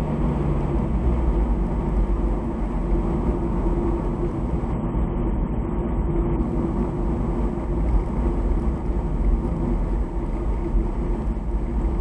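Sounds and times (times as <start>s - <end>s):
car cabin road and engine rumble: 0.0s - 12.0s.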